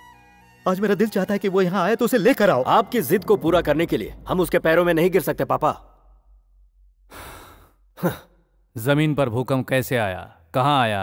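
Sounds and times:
person sighing: 7.1 - 8.4.

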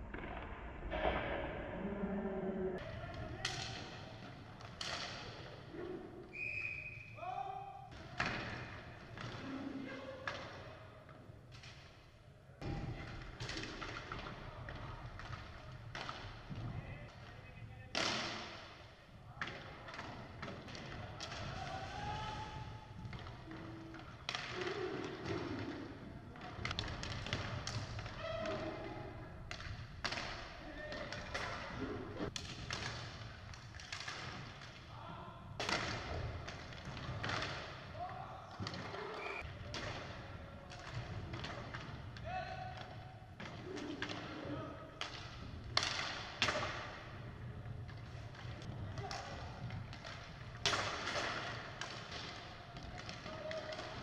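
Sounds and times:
players shouting: 21.2 - 22.9
sticks and puck knocking on floor: 45.0 - 54.0.

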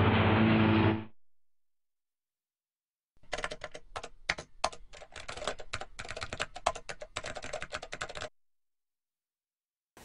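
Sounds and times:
typing on keyboard: 3.2 - 8.3.

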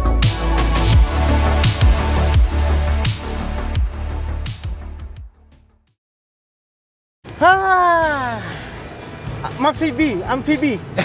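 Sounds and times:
men laughing and talking: 10.6 - 11.0.

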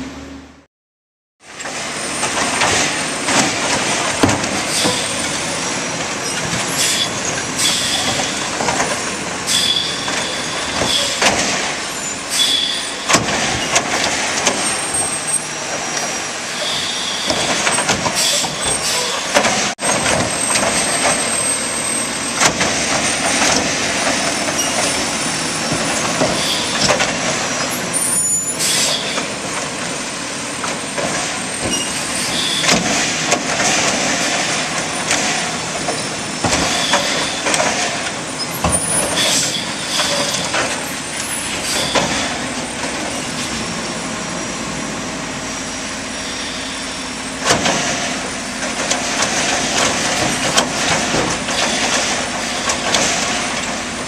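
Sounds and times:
garbage truck diesel engine: 0.0 - 0.7, 1.4 - 54.0
hydraulic arm dumping carts: 1.4 - 54.0
air brake hisses: 28.5 - 29.2.

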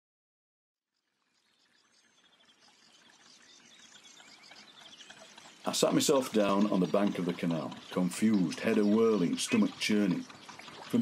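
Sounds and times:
trickling water: 0.9 - 11.0.

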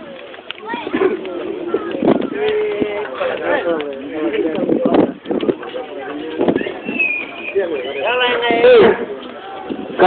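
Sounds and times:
people calling out and talking: 0.0 - 10.0
thin high whistle-like tone: 6.6 - 8.3.

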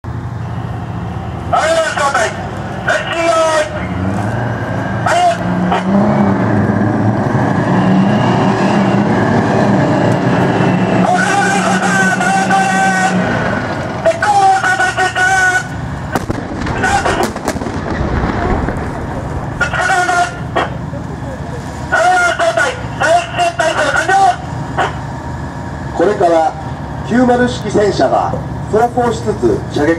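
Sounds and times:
tank diesel engine rumbling: 0.0 - 29.9.

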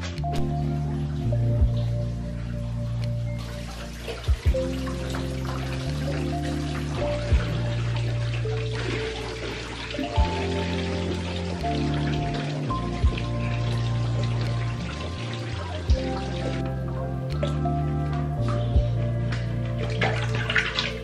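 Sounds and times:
background music with bass and beat: 0.0 - 21.0
water splashing into bathtub: 0.0 - 21.0.

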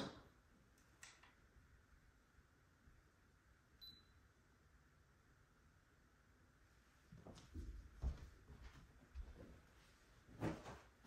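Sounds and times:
faint high-pitched beep: 3.8 - 4.3.

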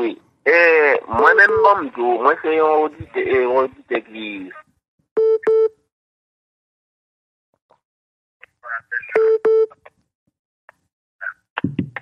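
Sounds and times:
short electronic telephone beeps: 5.2 - 5.8, 9.1 - 9.8.

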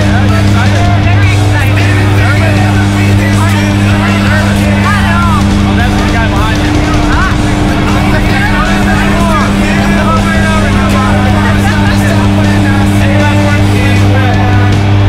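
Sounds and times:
propeller plane engines droning: 0.0 - 15.0.

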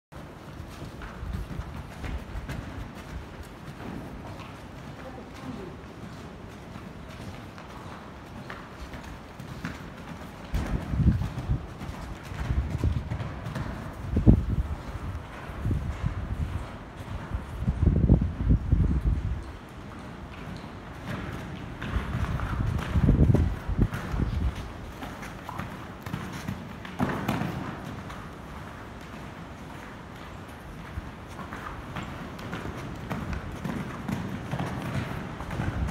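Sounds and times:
horse hoofbeats on sand: 0.2 - 35.9.

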